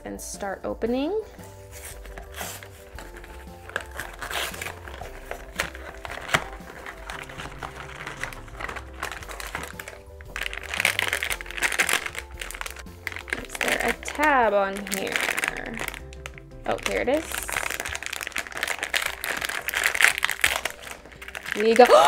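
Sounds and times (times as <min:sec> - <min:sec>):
background music: 0:00.0 - 0:22.0
cardboard crackling: 0:01.5 - 0:22.0
foil bag crinkling: 0:01.6 - 0:22.0.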